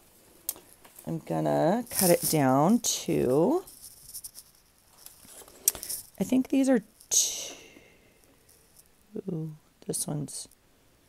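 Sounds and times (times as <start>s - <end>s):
paper rustling: 1.8s - 2.6s, 3.2s - 6.2s.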